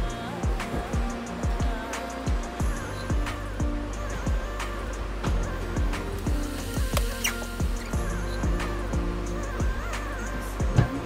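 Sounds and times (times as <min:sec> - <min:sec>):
deep kick drum: 0:00.0 - 0:04.6, 0:05.3 - 0:09.9, 0:10.6 - 0:11.0
held bass line: 0:00.0 - 0:11.0.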